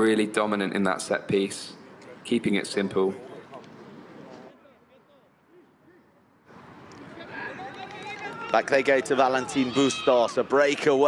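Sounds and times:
outdoor sports field ambience: 0.0s - 11.0s.

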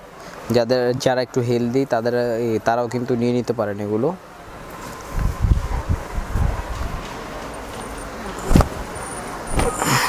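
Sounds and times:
fabric swishing: 8.4s - 9.8s.

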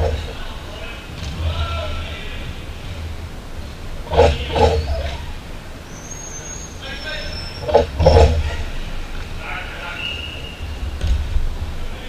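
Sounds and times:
players shouting: 0.0s - 11.0s
steady low hum: 0.0s - 12.0s.

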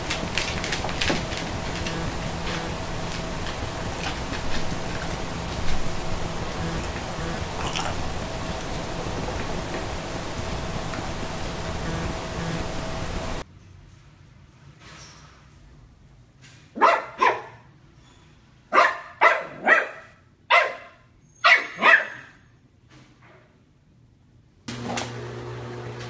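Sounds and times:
puppy barking: 16.8s - 17.6s, 18.7s - 22.4s.

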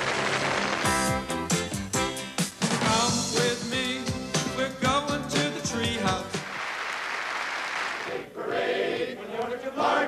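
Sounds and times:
applause: 0.0s - 1.1s, 6.3s - 8.1s
group of voices singing: 8.0s - 10.0s.

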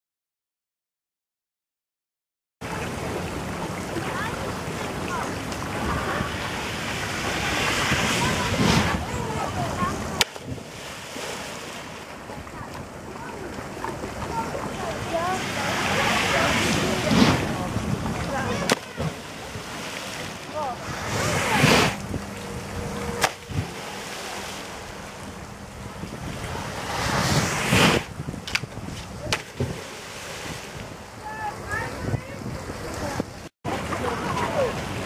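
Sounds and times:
distant voices: 2.6s - 35.0s
rushing water: 2.6s - 35.0s
wind on microphone: 3.8s - 35.0s.

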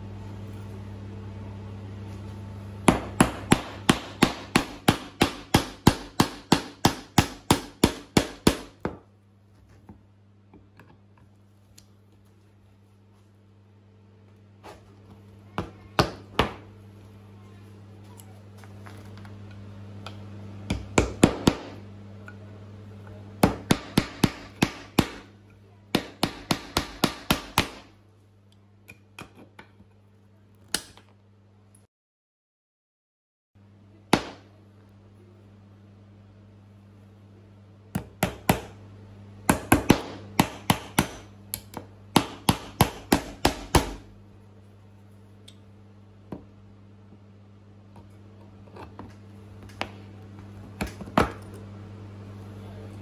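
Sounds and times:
hammer striking nail into wood: 2.9s - 9.0s, 20.7s - 21.8s, 23.4s - 25.3s, 25.9s - 27.9s, 38.0s - 38.8s, 39.5s - 44.1s.

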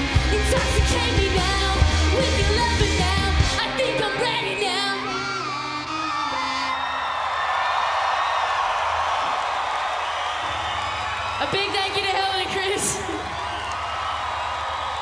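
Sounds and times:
live rock band playing: 0.0s - 6.8s
crowd cheering and whooping: 5.1s - 15.0s.

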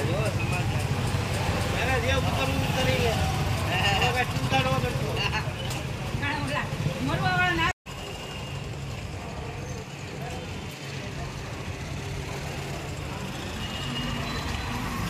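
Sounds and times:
street traffic hum: 0.0s - 15.0s.

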